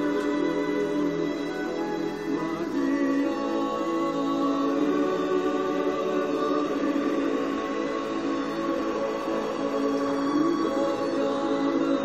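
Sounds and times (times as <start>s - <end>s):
choir holding long chords: 0.0s - 12.0s.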